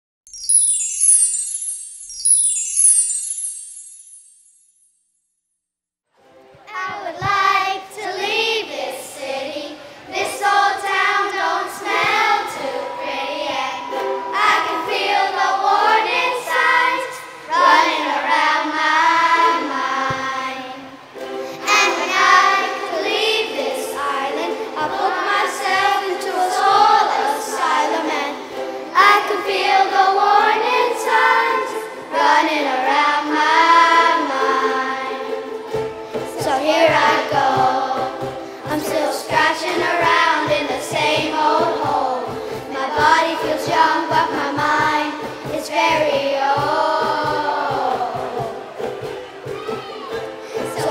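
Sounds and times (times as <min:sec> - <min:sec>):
ukuleles: 0:06.2 - 0:50.9
children singing in unison: 0:06.7 - 0:50.9.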